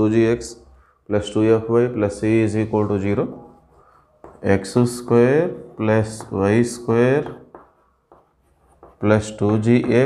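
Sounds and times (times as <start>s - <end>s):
man speaking: 0.0s - 3.6s, 4.3s - 7.6s, 8.9s - 10.0s
chalk scratching on blackboard: 2.5s - 10.0s.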